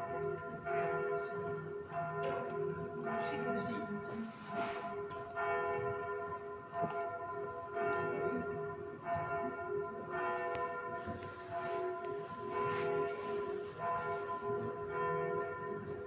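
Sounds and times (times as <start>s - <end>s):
church bells ringing: 0.0s - 16.0s.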